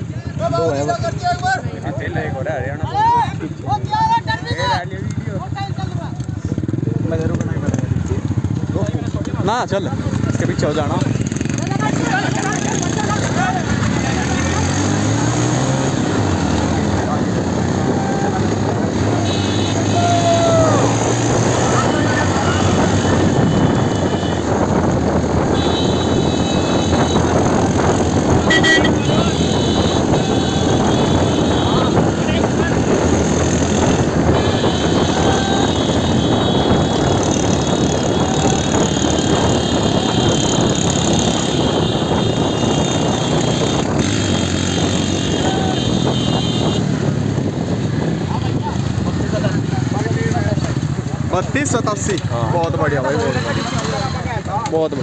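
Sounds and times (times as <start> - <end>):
motorcycle engines and road noise: 0.0 - 55.0
people shouting: 2.8 - 4.8, 17.6 - 24.4, 28.5 - 32.7, 34.3 - 37.0, 38.0 - 40.4, 45.3 - 46.8.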